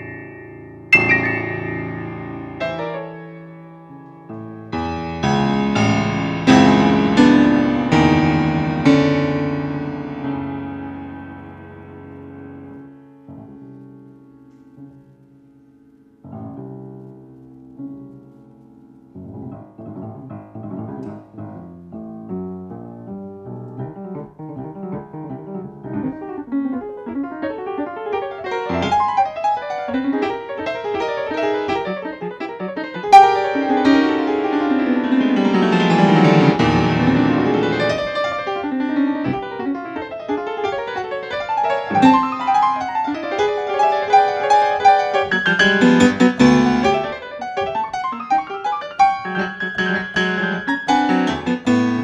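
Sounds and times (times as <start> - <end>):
grand piano chords: 0.0 - 52.0.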